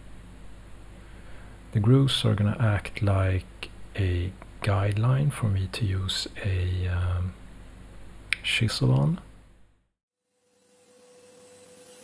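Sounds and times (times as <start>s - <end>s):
steady hum: 0.0s - 9.8s.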